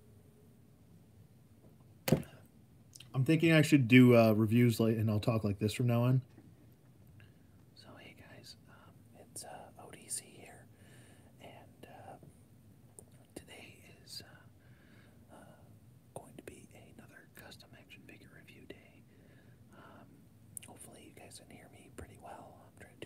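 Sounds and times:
man whispering: 7.8s - 10.7s, 11.4s - 12.3s, 13.0s - 14.6s, 15.3s - 19.1s, 19.7s - 23.0s.

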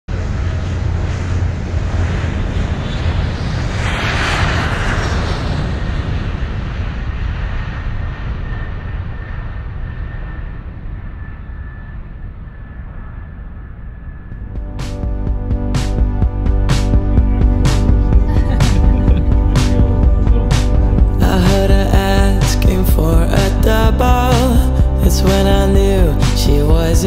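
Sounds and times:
high engine whine: 0.1s - 27.0s
jet engines rumbling at takeoff: 0.1s - 27.0s.

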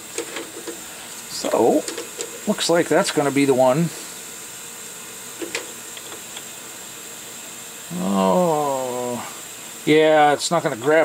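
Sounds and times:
faint steady hiss: 0.0s - 11.0s
man groaning uhh: 7.9s - 9.4s.

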